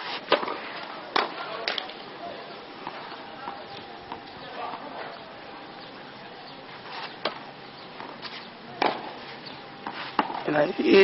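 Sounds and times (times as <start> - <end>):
tennis ball being struck: 8.0 - 9.2, 9.8 - 10.4.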